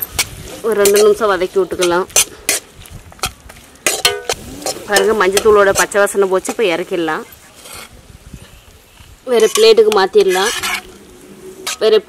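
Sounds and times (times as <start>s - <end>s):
metal ladle scraping a pan: 0.0s - 6.7s, 7.5s - 8.0s, 9.3s - 12.0s
vegetables sizzling in a pan: 0.0s - 12.0s.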